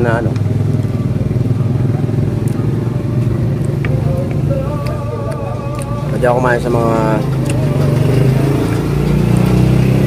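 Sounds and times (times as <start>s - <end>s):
vehicle engine humming: 0.0s - 10.0s.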